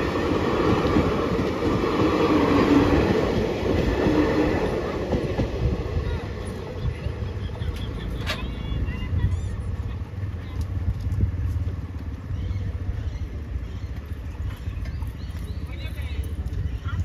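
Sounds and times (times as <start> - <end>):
rumble of vehicles: 0.0 - 17.0
faint voices: 4.6 - 17.0.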